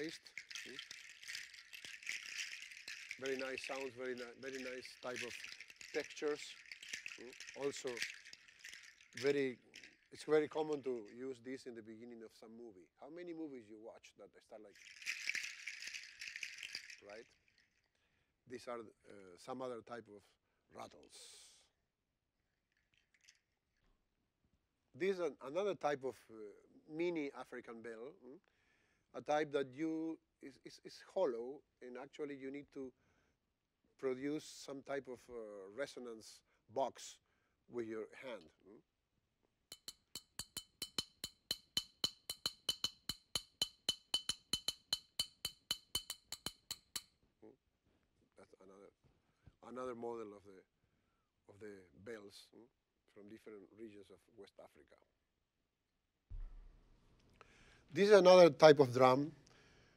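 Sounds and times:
shell rattles shaken: 0.0 - 11.2, 14.7 - 17.8, 22.7 - 23.4, 39.7 - 47.1
small bell struck with stick: 39.7 - 47.0.

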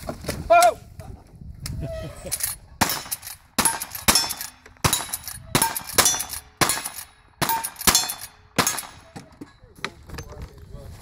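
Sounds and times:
rifle shots: 2.8 - 9.2
steel targets ringing: 2.8 - 9.2.

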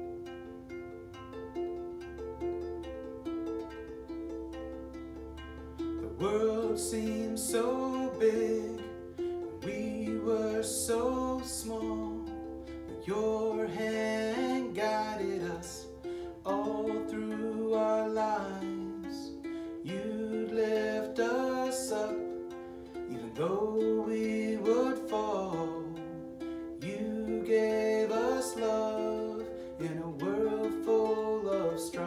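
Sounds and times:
ukulele playing: 0.0 - 32.0
man singing: 6.0 - 32.0.

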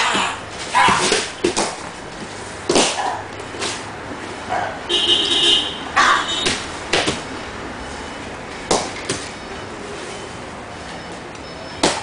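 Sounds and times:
bodies scuffing and slapping on mat: 0.1 - 3.8, 6.4 - 7.3.

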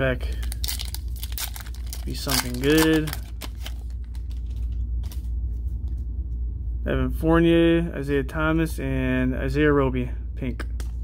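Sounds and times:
cellophane wrapper crinkling: 0.2 - 5.3
cards being handled: 0.3 - 6.0.

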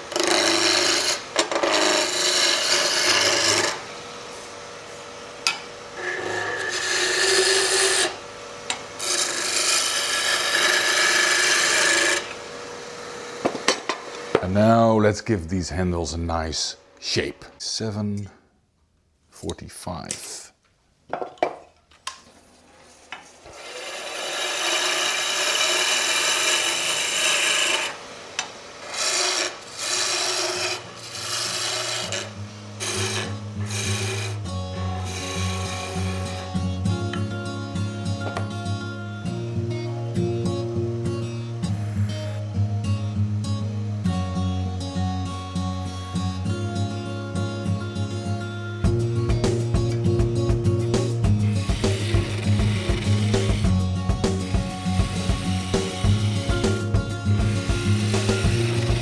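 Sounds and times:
lathe tool scraping wood: 0.0 - 5.0, 6.0 - 15.1, 22.9 - 36.8, 41.6 - 42.5, 51.3 - 59.0
background music with slow bass: 32.3 - 59.0.

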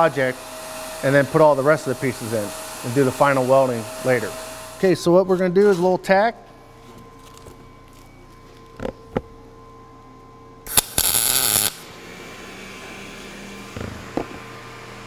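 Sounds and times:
fume extractor blower hiss: 0.0 - 5.0, 10.7 - 15.0
welding arc crackling: 10.7 - 11.9.

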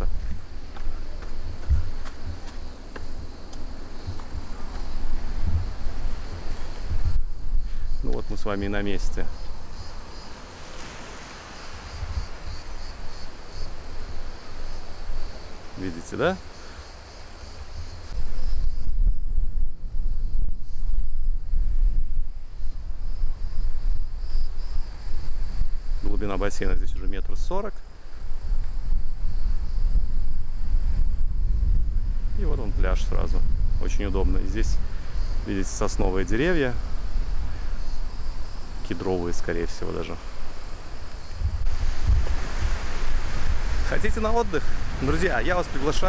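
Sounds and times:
insects buzzing: 0.0 - 46.0
wind buffeting microphone: 0.0 - 46.0.

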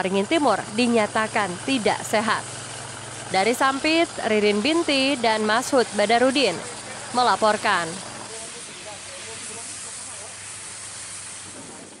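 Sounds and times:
fire hose spraying water: 0.0 - 12.0.

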